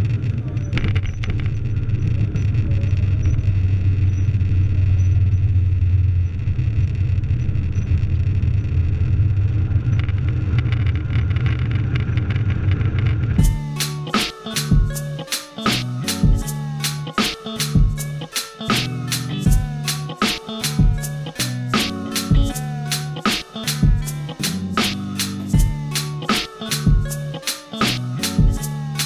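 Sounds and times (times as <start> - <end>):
music with a beat: 13.4 - 29.0.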